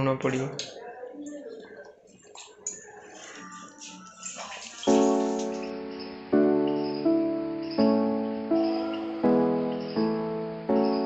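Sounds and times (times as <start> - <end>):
liquid pouring into a pan: 3.3 - 5.5
piano-like music chord: 4.9 - 11.0.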